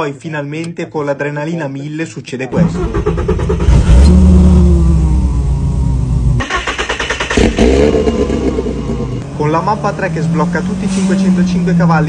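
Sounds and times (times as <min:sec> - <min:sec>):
car engine revving: 0:02.6 - 0:12.0.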